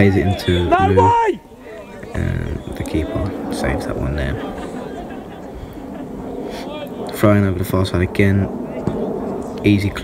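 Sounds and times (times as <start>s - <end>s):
distant voices calling: 0.0s - 7.2s.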